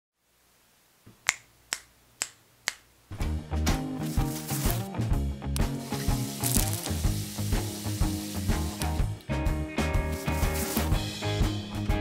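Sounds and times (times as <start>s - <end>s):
finger snaps: 1.1s - 2.9s
music with a steady beat: 3.2s - 12.0s.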